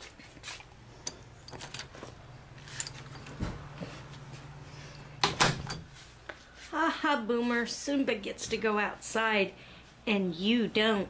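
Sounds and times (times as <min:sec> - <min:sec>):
door clicks and knocks: 0:05.2 - 0:05.9.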